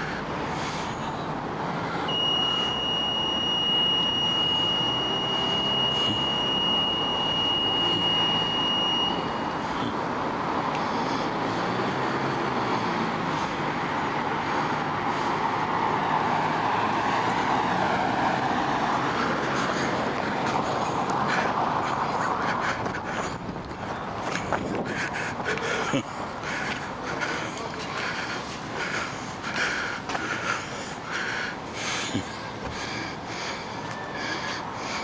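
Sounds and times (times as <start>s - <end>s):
passing cars: 0.0s - 35.0s
steady high-pitched tone: 2.1s - 10.0s.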